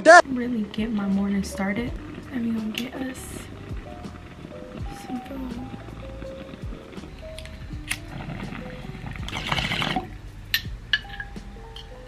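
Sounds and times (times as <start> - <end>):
background music with steady beat: 0.0 - 12.0
bong water bubbling: 0.2 - 11.5.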